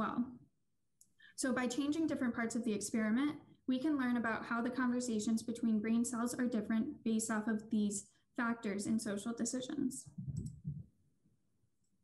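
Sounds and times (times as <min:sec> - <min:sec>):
soft low thumps: 0:10.2 - 0:10.9.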